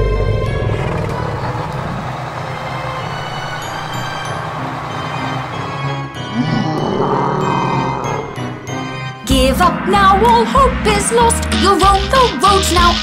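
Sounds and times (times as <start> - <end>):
instrumental children's song music: 2.4 - 13.0.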